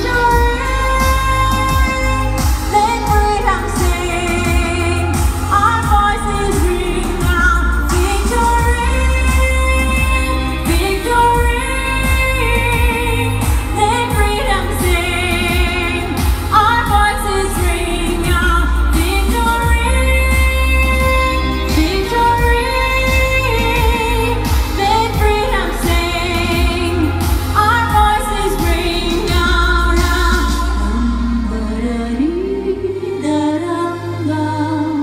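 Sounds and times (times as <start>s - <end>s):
deep bass: 0.0s - 35.0s.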